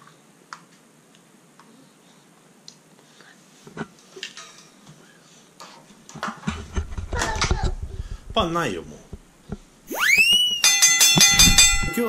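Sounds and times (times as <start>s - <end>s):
rising slide whistle glide: 9.9s - 10.9s
rapid ringing bell strikes: 10.6s - 12.0s.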